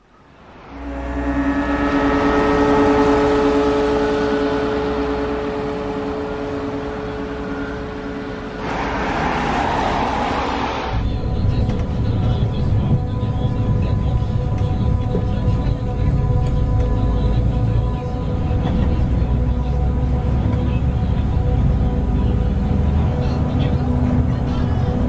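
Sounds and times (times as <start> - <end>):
bus engine humming: 0.0 - 25.0
low rumble inside moving bus: 0.0 - 25.0
rushing noise: 0.0 - 25.0.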